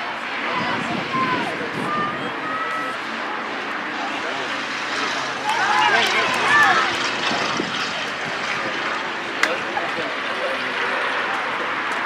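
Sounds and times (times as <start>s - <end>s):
distant voices: 0.0s - 12.0s
low engine drone: 0.0s - 12.0s.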